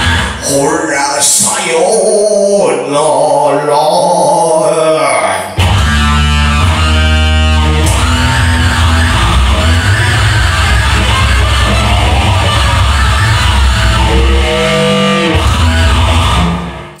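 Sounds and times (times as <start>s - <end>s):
live rock music: 0.0s - 17.0s
loud electric guitar: 0.0s - 17.0s.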